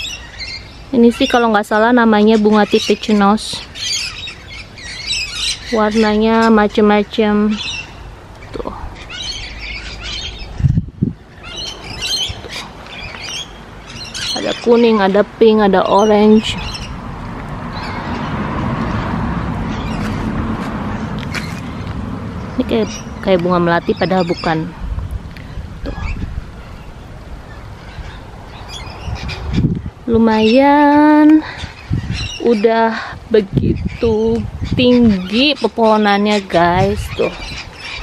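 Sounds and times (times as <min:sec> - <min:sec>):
birds chirping and squawking: 0:00.0 - 0:38.0
low rumble on microphone: 0:07.4 - 0:13.3, 0:16.1 - 0:32.5, 0:33.1 - 0:35.2.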